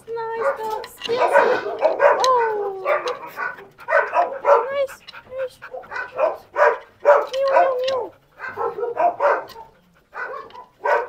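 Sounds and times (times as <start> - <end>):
dogs yipping and whining: 0.0 - 11.0.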